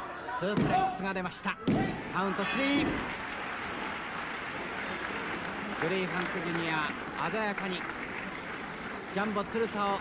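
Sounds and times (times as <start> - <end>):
crowd applauding and cheering: 2.1 - 10.0.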